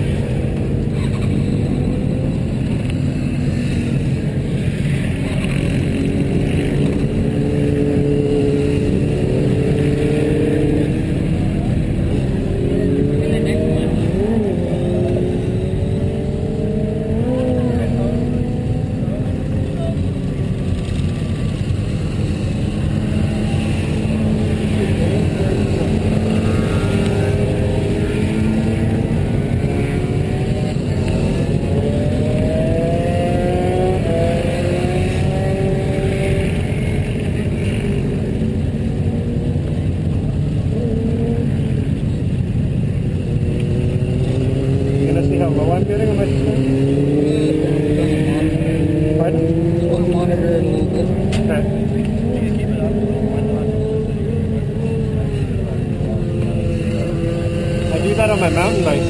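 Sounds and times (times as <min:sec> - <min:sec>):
motorbike passing by: 0:01.0 - 0:59.0.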